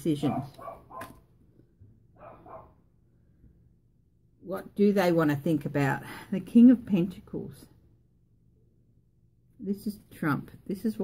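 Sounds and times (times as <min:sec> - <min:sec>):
dog barking faintly: 0:02.2 - 0:02.8.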